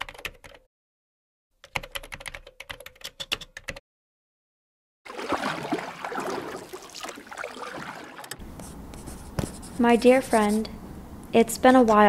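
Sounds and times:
pen scratching on paper: 8.5s - 10.7s
person speaking: 8.6s - 12.0s.

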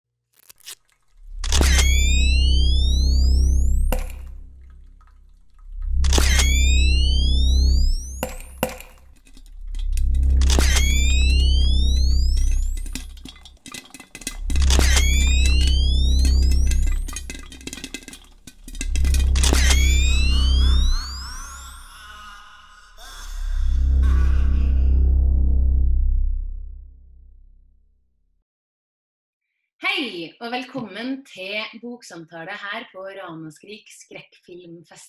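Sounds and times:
scattered crackles: 0.3s - 21.6s
deep bass swells: 1.2s - 13.2s, 23.4s - 27.9s.

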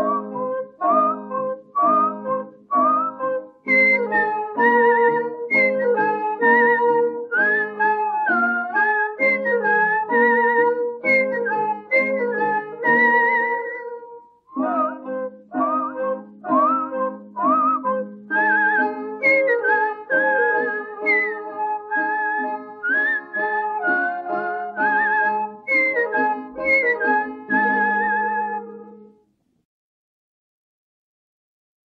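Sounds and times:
sliding melody over plucked strings: 0.0s - 29.0s.

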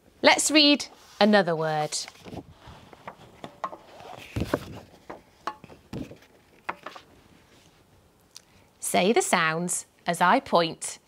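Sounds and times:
paper rustling: 1.0s - 7.1s.

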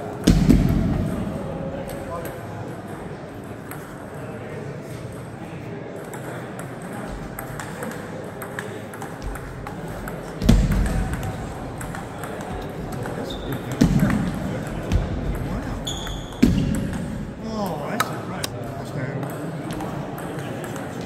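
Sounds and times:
murmur of voices: 0.0s - 21.0s.

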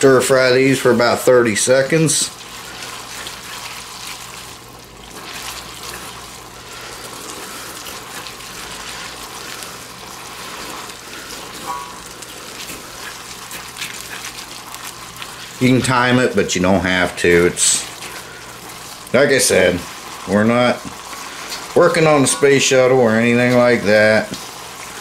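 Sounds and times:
noodles sizzling in a wok: 0.0s - 25.0s.

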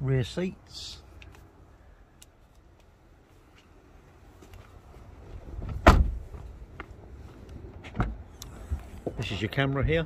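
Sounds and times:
car door slamming shut: 5.6s - 6.3s
dull thump: 5.6s - 6.4s.

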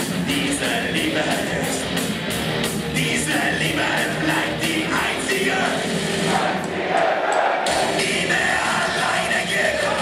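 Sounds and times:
punk rock band playing live: 0.0s - 6.9s, 7.6s - 10.0s
audience singing along: 3.0s - 10.0s.

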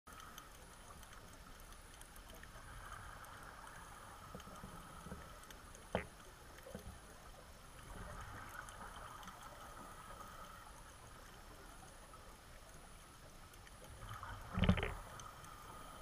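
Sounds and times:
low underwater hiss: 0.1s - 16.0s
small clicks: 0.1s - 16.0s.

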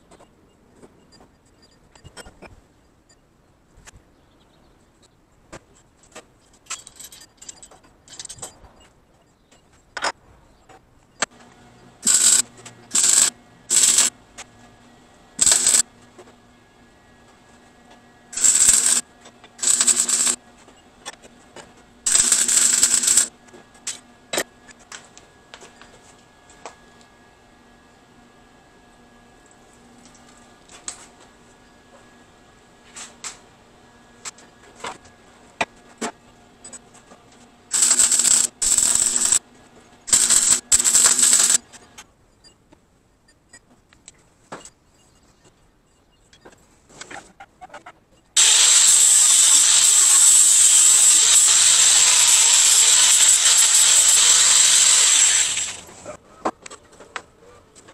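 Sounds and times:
arc welding crackling: 12.0s - 14.2s, 15.4s - 15.9s, 18.3s - 20.4s, 22.0s - 24.0s, 37.7s - 39.4s, 40.1s - 41.8s, 48.4s - 55.9s.

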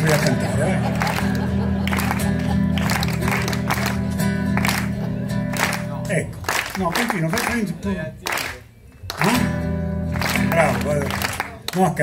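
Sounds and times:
hand claps: 1.0s - 7.6s, 8.2s - 9.5s, 10.1s - 12.0s.

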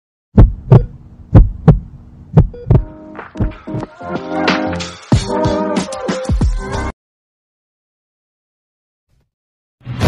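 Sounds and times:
heartbeat thumps: 0.4s - 3.6s
music: 2.7s - 7.0s.

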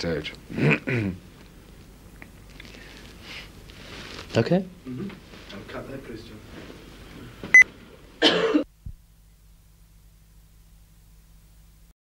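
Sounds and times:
man coughing: 0.6s - 1.2s, 8.2s - 8.7s.

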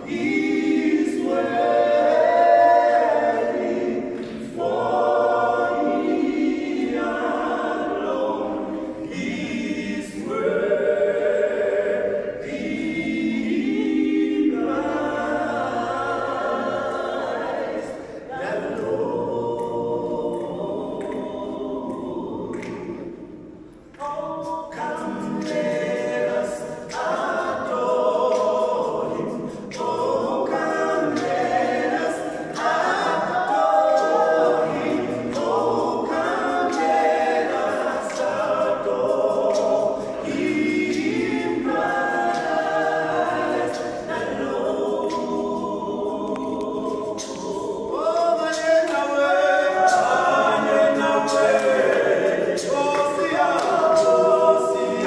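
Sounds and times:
men singing a cappella: 0.0s - 23.0s, 24.0s - 55.0s.

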